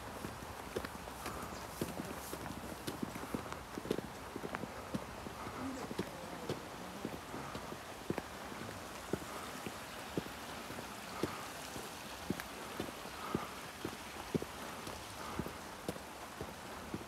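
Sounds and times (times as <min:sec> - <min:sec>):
footsteps on paved path: 0:00.0 - 0:17.0
steady outdoor hiss: 0:00.0 - 0:17.0.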